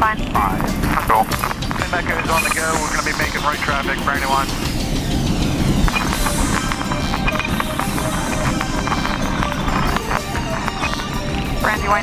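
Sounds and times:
music playing: 0.0s - 12.0s
propeller airplane engine running: 0.0s - 12.0s.

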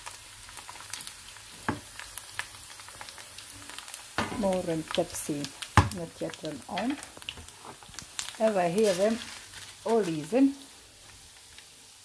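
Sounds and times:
onion sizzling in a pan: 0.0s - 12.0s.

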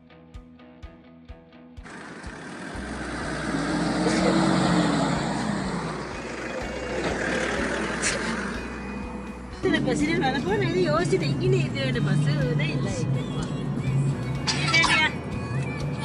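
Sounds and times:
music: 0.0s - 1.9s, 5.7s - 16.0s
highway traffic road noise: 1.8s - 16.0s
truck passing by: 1.8s - 16.0s.

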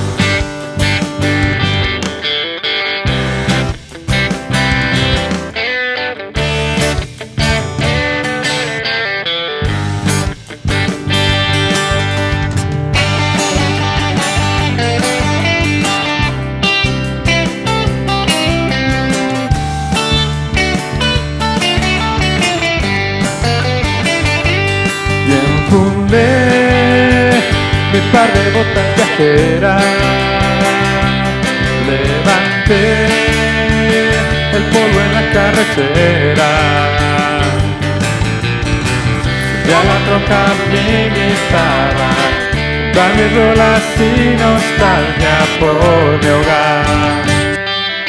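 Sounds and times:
acoustic guitar strumming: 0.0s - 48.0s
electric guitar lead: 0.0s - 48.0s.

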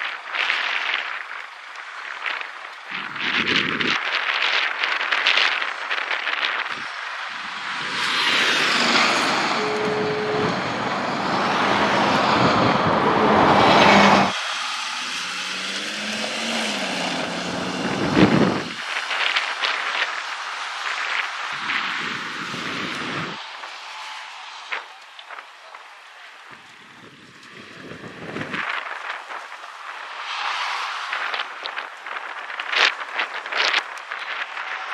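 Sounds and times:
vehicles passing at speed: 5.6s - 34.9s.

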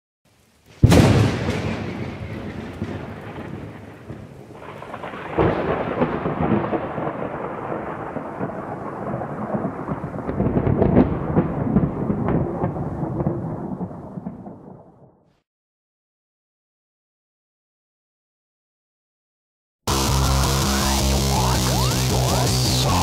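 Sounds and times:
rain: 0.3s - 14.5s, 19.9s - 23.0s
crackling thunder rumble: 0.6s - 15.2s
thunderclap: 0.7s - 15.2s.

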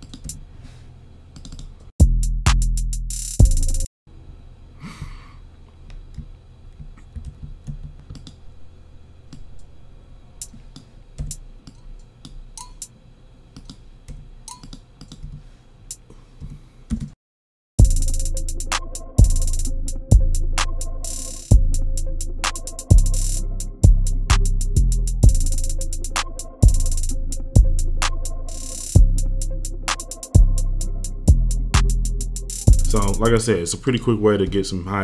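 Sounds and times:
trap drum beat: 2.0s - 3.9s, 17.8s - 33.5s.

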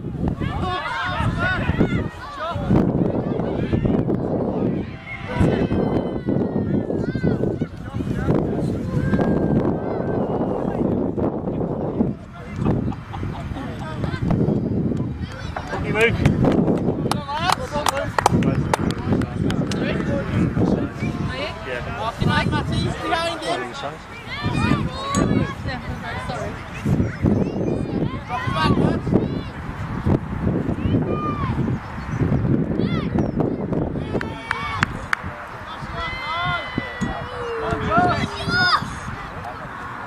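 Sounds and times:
low wind rumble: 0.0s - 40.0s
distant shouts and calls: 0.3s - 10.9s, 22.2s - 29.8s, 30.8s - 40.0s
people shouting: 0.4s - 7.8s, 35.7s - 39.1s.

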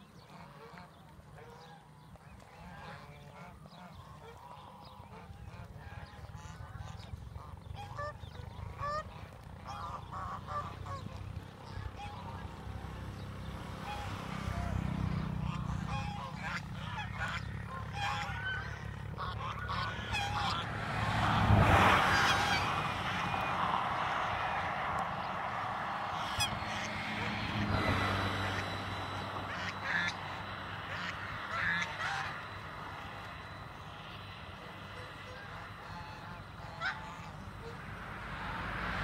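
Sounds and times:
geese honking: 0.0s - 39.0s.

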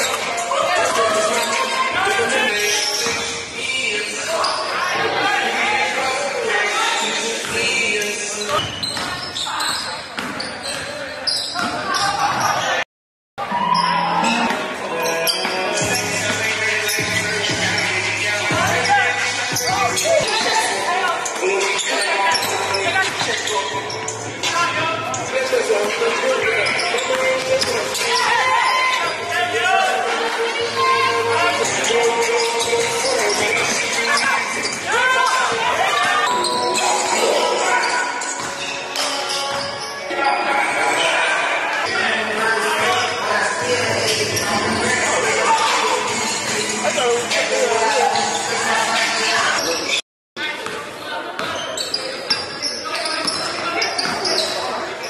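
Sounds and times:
voices in background: 13.6s - 55.0s.

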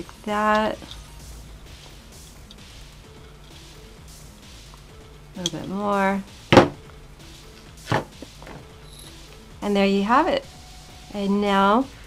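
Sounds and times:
hard knock on tabletop: 6.5s - 6.8s.

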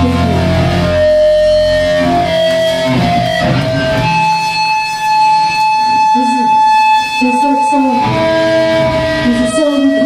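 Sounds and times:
band playing: 0.0s - 10.0s
guitar amplifier feedback tone: 0.0s - 10.0s.

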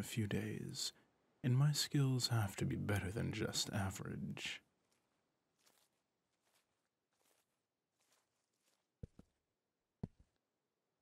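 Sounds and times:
soft footstep thumps: 4.8s - 9.4s, 10.0s - 10.4s.

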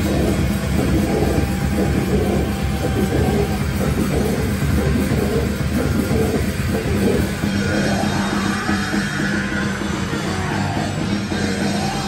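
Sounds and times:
bass guitar: 0.0s - 12.0s
distorted electric guitar: 0.0s - 12.0s
drum kit: 0.0s - 12.0s.

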